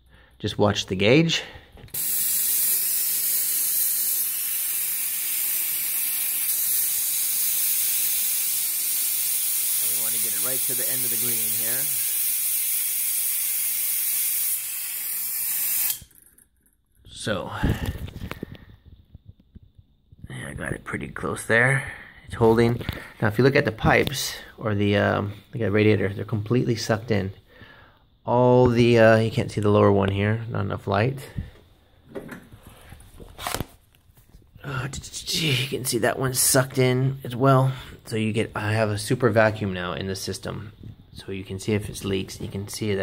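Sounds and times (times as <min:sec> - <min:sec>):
compressed air hissing: 0:01.5 - 0:16.1.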